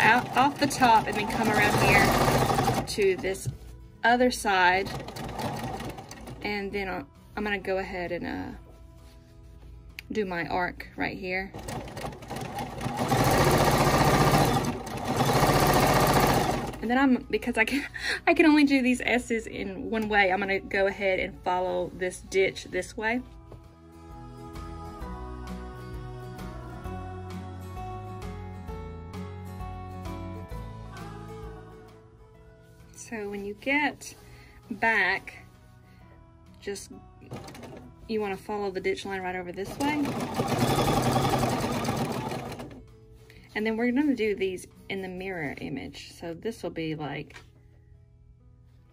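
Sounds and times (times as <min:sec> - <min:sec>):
sewing machine stitching fast: 0:00.0 - 0:03.3, 0:04.8 - 0:06.4, 0:11.5 - 0:16.8, 0:37.3 - 0:37.9, 0:39.6 - 0:42.8.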